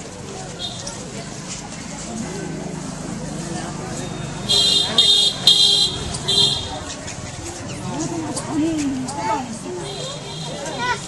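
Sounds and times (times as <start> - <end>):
murmur of voices: 0.0 - 11.0
high-pitched vehicle horn honking: 4.5 - 6.7.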